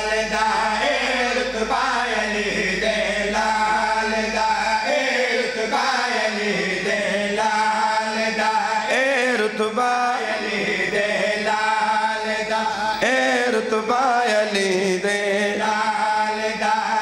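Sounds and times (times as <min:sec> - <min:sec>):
steady low drone: 0:00.0 - 0:08.8
man chanting: 0:00.0 - 0:17.0.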